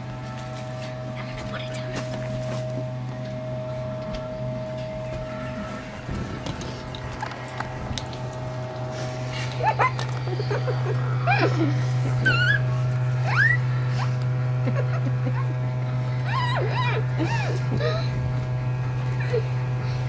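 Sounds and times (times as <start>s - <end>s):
steady low hum: 0.0s - 20.0s
high whining cries: 2.5s - 20.0s.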